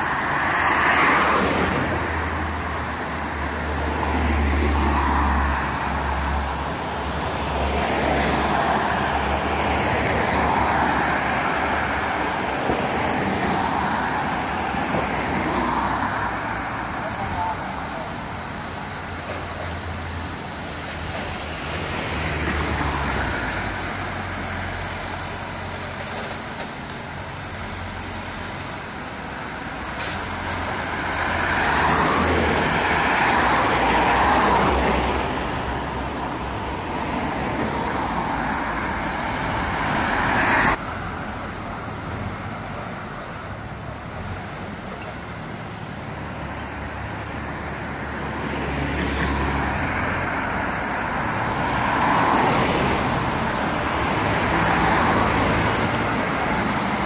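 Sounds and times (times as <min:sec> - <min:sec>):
passing road traffic: 0:00.0 - 0:57.0.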